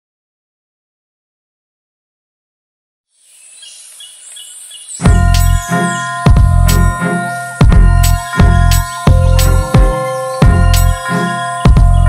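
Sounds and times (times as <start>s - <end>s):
high-pitched hum: 5.0s - 12.0s.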